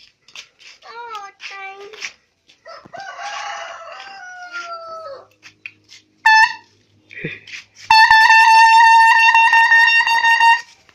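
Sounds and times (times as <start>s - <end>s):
air horn toots and blast: 6.2s - 6.7s, 7.9s - 10.8s.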